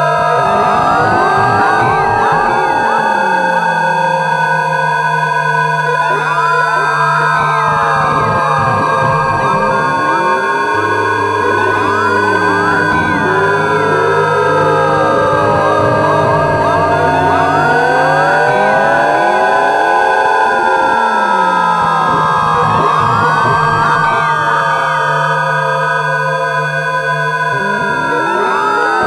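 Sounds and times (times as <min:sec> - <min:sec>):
steady electronic tones: 0:05.6 - 0:24.7
sweeping pitch glides: 0:05.7 - 0:24.5.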